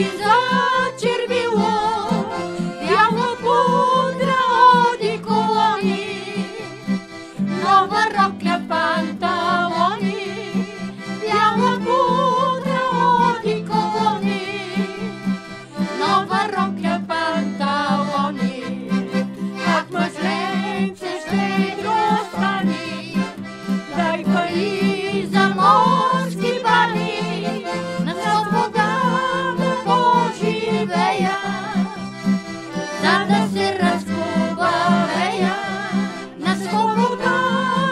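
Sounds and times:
accordion folk dance tune: 0.0s - 37.9s.

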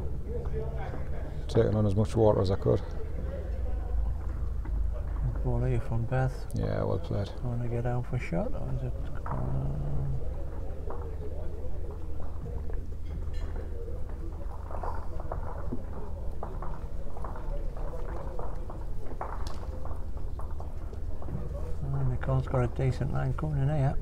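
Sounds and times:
murmur of voices: 0.0s - 24.0s
steady low hum: 0.0s - 24.0s.

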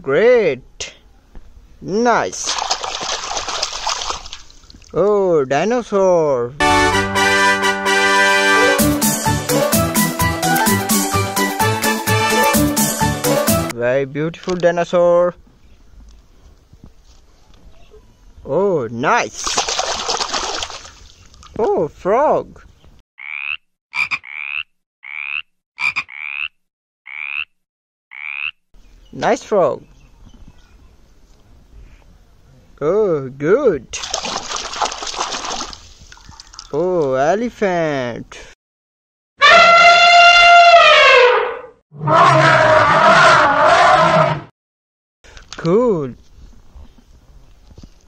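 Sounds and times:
frog croaks: 23.2s - 28.6s
elephant trumpeting: 39.4s - 44.5s.

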